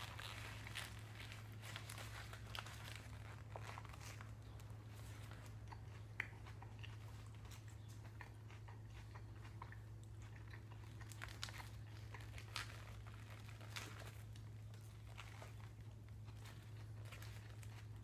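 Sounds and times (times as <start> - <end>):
person chewing a sandwich: 0.0 - 18.0
steady low hum: 0.0 - 18.0.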